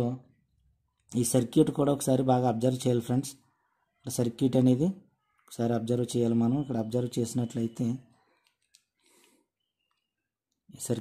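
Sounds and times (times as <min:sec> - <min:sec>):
speech: 0:00.0 - 0:00.3, 0:01.1 - 0:08.1, 0:10.7 - 0:11.0.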